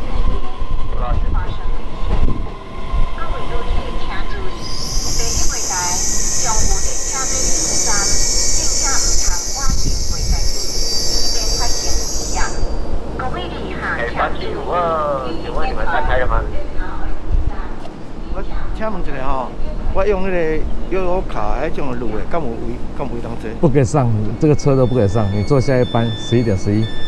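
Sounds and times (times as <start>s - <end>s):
train rumbling: 0.0s - 27.0s
high-pitched brake squeal: 4.3s - 12.9s, 24.0s - 27.0s.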